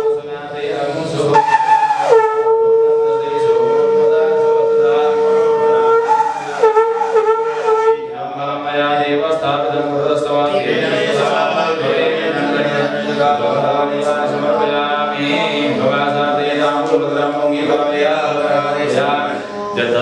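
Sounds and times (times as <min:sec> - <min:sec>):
conch shell blown: 0:00.0 - 0:00.2, 0:01.3 - 0:08.1
voices chanting: 0:00.0 - 0:20.0.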